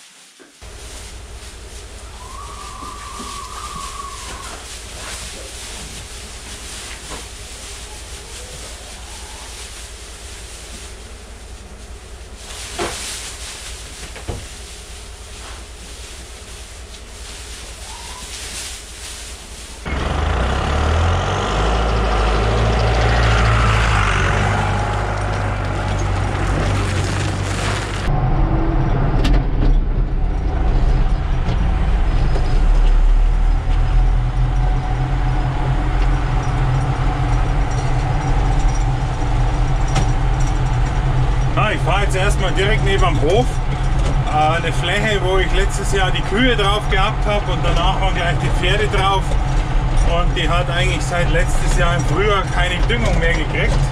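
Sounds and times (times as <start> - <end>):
steady hiss: 0.0 - 19.9
tractor diesel engine running: 0.6 - 53.9.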